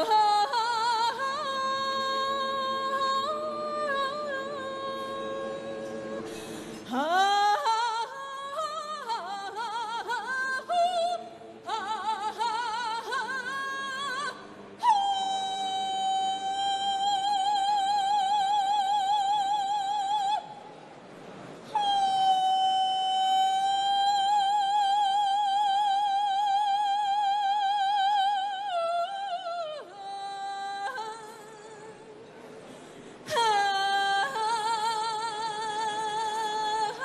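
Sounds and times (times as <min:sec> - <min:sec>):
woman singing folk song: 0:00.0 - 0:20.5, 0:21.6 - 0:32.1, 0:33.2 - 0:37.0.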